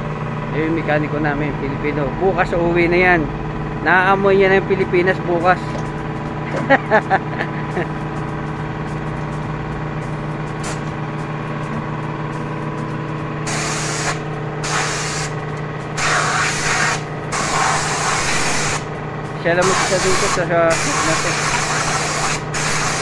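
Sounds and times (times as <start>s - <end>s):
compressed air blow gun hissing: 13.5s - 15.4s, 16.0s - 18.9s, 19.6s - 23.0s.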